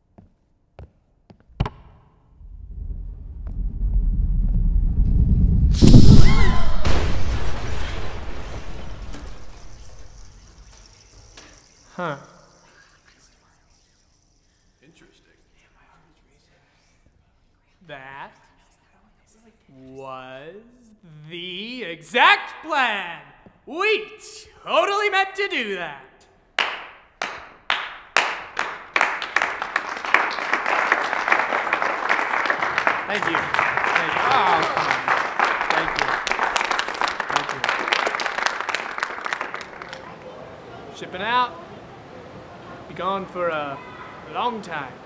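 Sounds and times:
rocket launch rumble and hiss: 2.4 - 11.7
audience applause: 7.4 - 12.9, 26.6 - 45.0.

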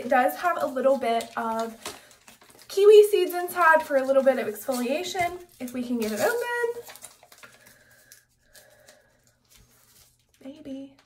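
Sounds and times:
soap packaging rustling: 0.0 - 11.0.

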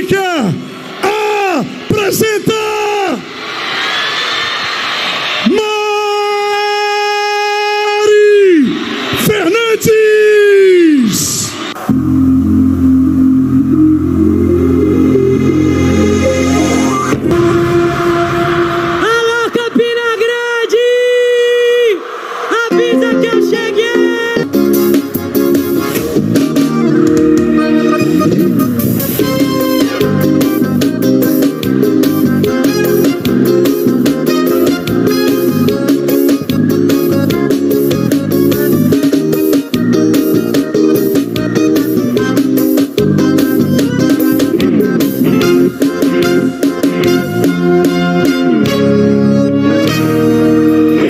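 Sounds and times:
announcer shouting over loudspeakers: 0.0 - 3.2, 22.6 - 24.7
crowd cheering: 0.0 - 11.9, 15.5 - 22.8
live music with bass beat: 11.5 - 19.2, 22.7 - 51.0.

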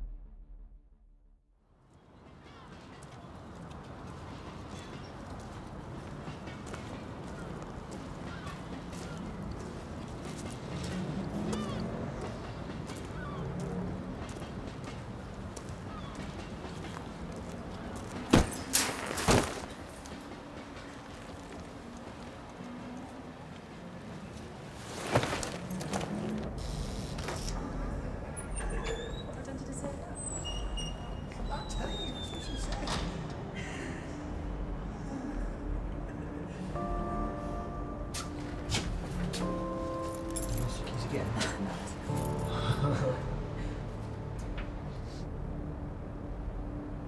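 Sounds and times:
low urban rumble: 0.0 - 47.0.

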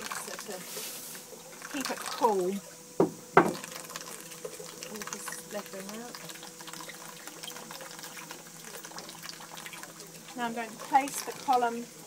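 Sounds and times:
faint pump hum: 0.0 - 12.0
running water rushing: 0.0 - 12.0.

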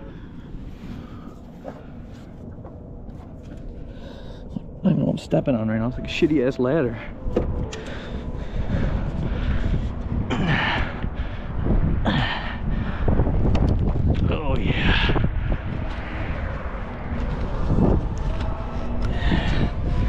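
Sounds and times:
man breathing heavily: 0.0 - 4.8, 7.0 - 14.1, 14.7 - 20.0
wind buffeting microphone: 0.0 - 20.0.

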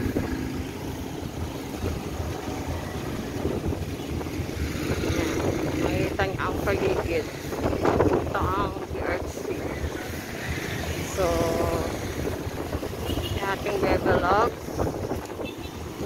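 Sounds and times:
traffic on a wet road: 0.0 - 16.0
wind buffeting microphone: 0.0 - 16.0.

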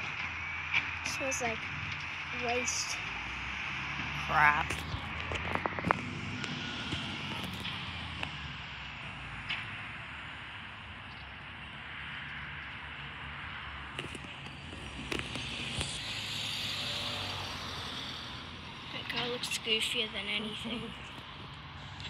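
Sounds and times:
diesel engine low rumble: 0.0 - 22.0
hiss: 16.0 - 18.5.

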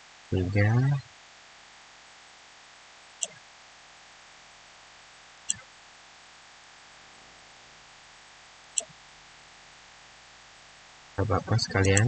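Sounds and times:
background hiss and electrical hum: 0.0 - 12.0
man speaking: 0.3 - 1.0, 11.2 - 12.0.

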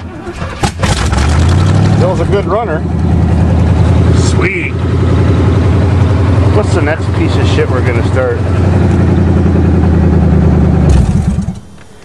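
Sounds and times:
car engine running: 0.0 - 12.0
engine winding down: 0.0 - 12.0.

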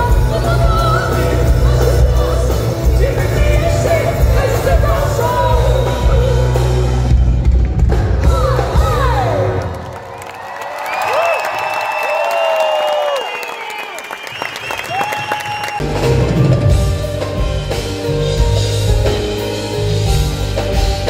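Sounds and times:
live band with heavy bass: 0.0 - 9.7, 15.8 - 21.0
audience cheering and whistling: 9.6 - 16.2.

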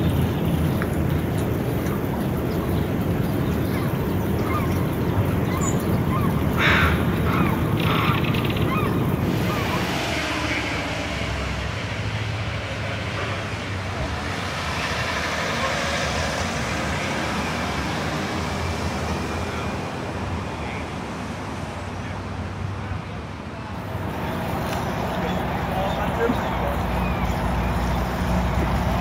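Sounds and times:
tyre noise on wet road: 0.0 - 21.0, 23.6 - 29.0
cars driving by: 0.0 - 29.0.

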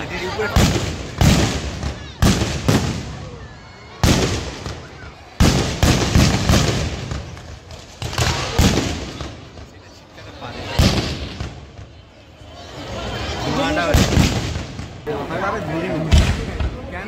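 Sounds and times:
fireworks and firecrackers banging: 0.0 - 17.0.

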